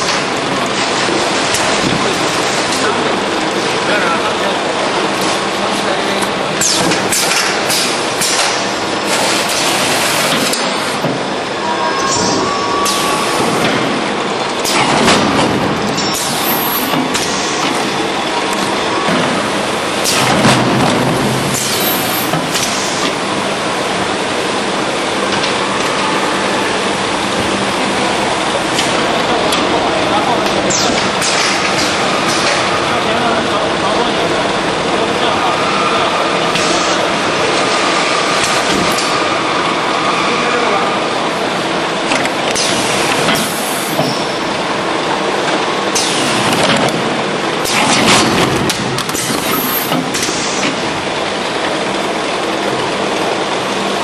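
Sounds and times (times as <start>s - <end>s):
packing machine running: 0.0s - 54.0s.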